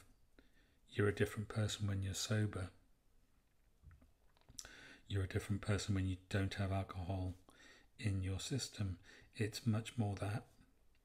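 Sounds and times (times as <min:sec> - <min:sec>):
short breath: 0:04.6 - 0:05.1, 0:07.5 - 0:08.0.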